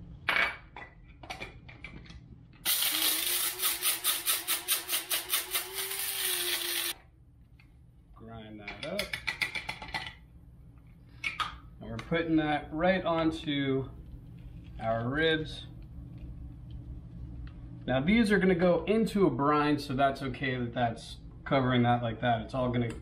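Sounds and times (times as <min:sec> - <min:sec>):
coffee grinder grinding spices: 0:02.7 - 0:07.0.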